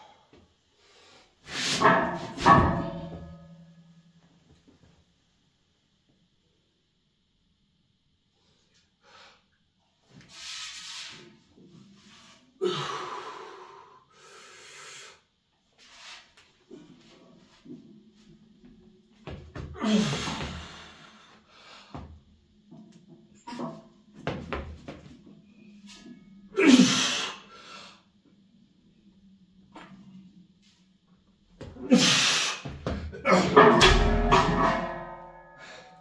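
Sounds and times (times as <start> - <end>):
man grunting with effort: 19.8 - 20.7, 33.1 - 33.8.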